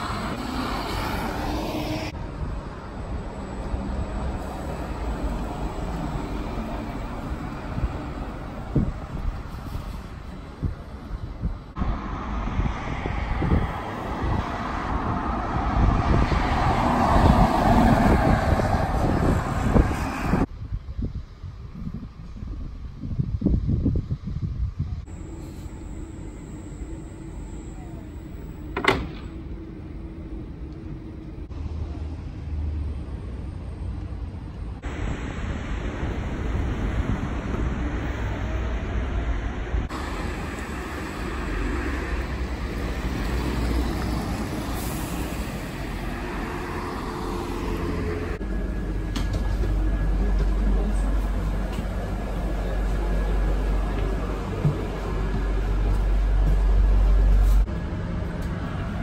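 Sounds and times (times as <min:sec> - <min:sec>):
buses and traffic driving past: 0:00.0 - 0:59.0.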